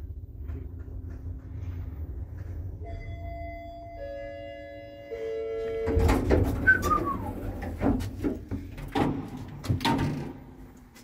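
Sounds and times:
lift arrival tones: 2.1 - 7.8
lift doors clattering: 5.6 - 10.8.

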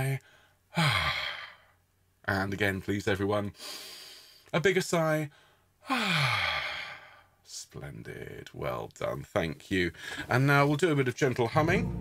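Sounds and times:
man sighing: 0.3 - 1.8, 5.8 - 7.4.

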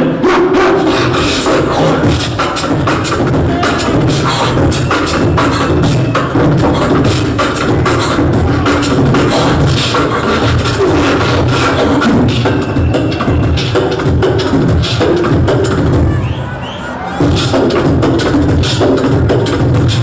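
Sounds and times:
beatboxing through a pa: 0.0 - 16.4, 17.1 - 20.0.

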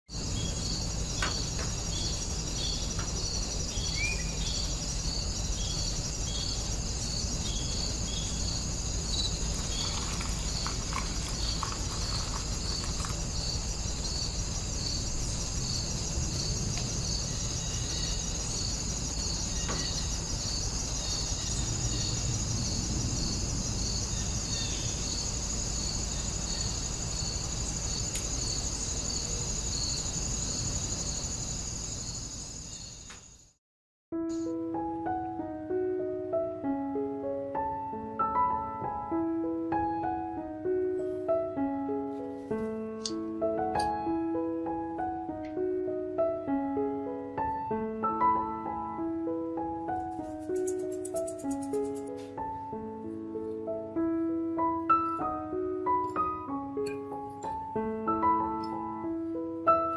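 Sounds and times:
high insect trill: 0.1 - 33.6, 49.9 - 52.2
insects chirping: 0.1 - 33.6, 43.1 - 52.8, 54.6 - 59.9.

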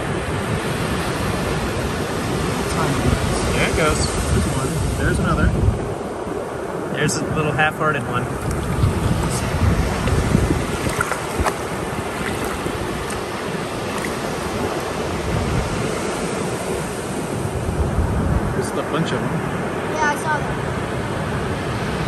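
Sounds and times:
ocean surf on beach: 0.0 - 22.0
wind buffeting microphone: 0.0 - 22.0.

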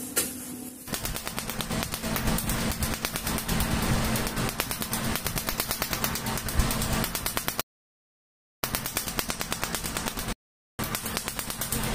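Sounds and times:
laser unit low hum: 0.8 - 7.6.

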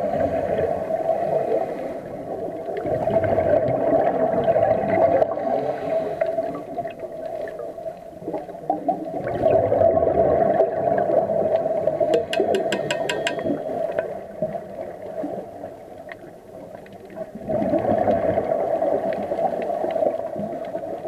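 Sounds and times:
scuba exhaust bubbles underwater: 0.0 - 21.0.

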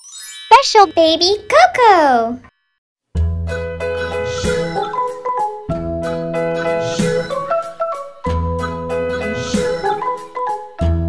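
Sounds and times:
rising sparkle of chimes: 0.0 - 1.0.

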